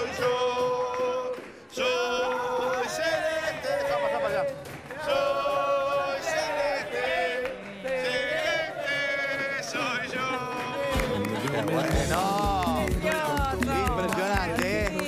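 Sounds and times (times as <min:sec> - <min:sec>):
men singing in unison: 0:00.0 - 0:15.0.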